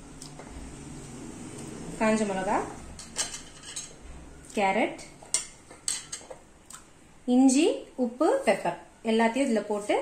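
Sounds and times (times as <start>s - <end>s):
metal kitchenware clinking: 2.9s - 4.0s, 5.3s - 6.4s.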